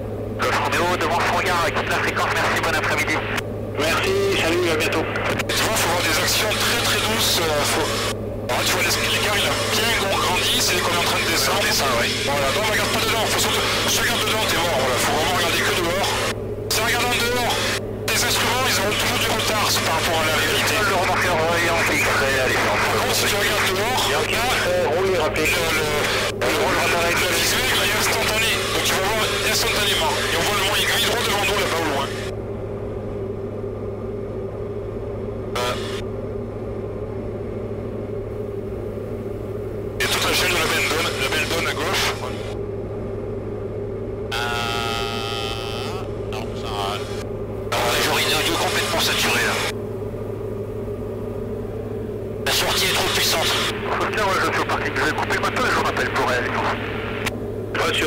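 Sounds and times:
airplane engine and propeller drone: 0.0 - 58.0
radio chatter: 0.4 - 32.3, 35.6 - 36.0, 40.0 - 42.6, 44.3 - 49.7, 52.4 - 58.0.

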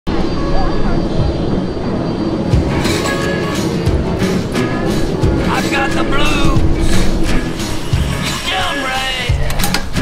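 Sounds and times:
faint voices: 0.1 - 9.7
airplane engine noise: 0.1 - 10.0.

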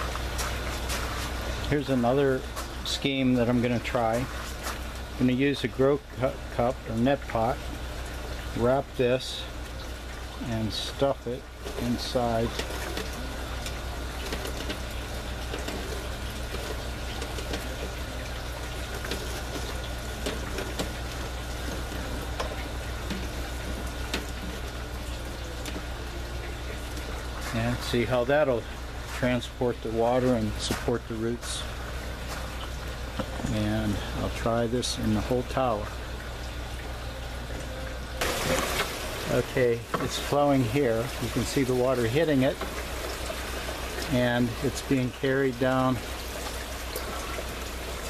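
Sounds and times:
low pump hum: 0.0 - 48.0
water trickling: 0.0 - 48.0.

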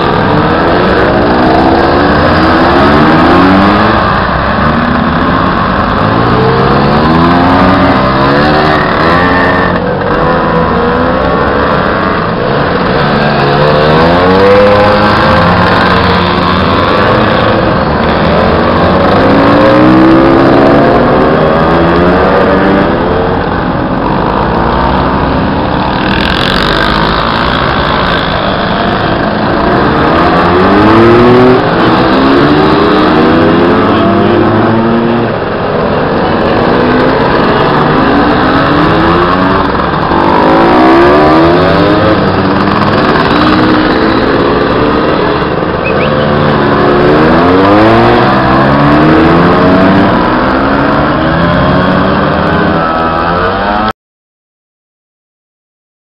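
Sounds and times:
two-stroke scooters accelerating: 0.0 - 53.9.

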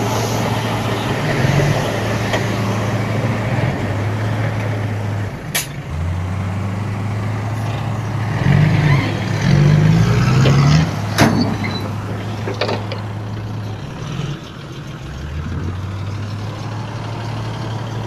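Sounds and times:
diesel truck engines running: 0.0 - 18.0
truck engine revving: 0.0 - 18.0.

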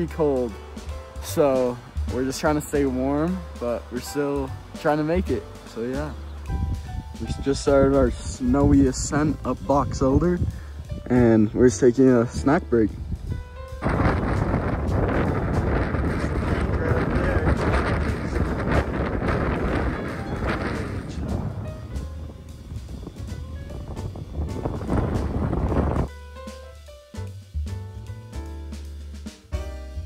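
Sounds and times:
background music with steady tones: 0.0 - 30.0
wind buffeting microphone: 6.0 - 26.1.

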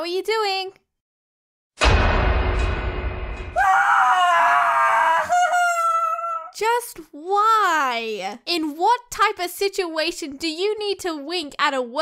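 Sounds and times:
woman screaming: 3.6 - 6.6.

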